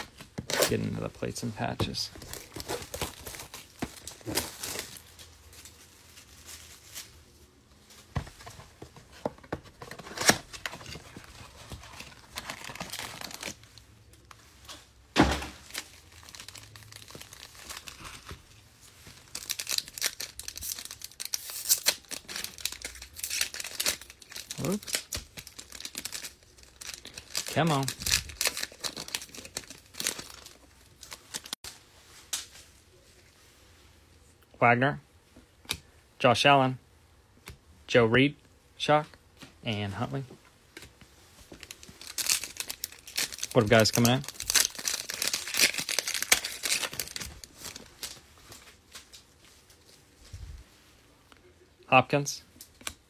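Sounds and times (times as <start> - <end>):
foil packs crinkling: 0.0 - 7.2, 9.8 - 13.8, 15.6 - 18.5, 19.1 - 31.6, 41.5 - 49.2
cellophane wrap tearing: 10.1 - 13.7, 15.6 - 18.4, 19.3 - 31.6, 41.6 - 48.2.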